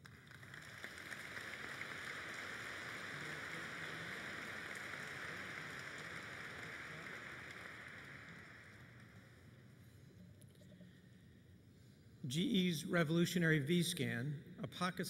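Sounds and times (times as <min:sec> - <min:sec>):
audience applauding: 0:00.0 - 0:09.5.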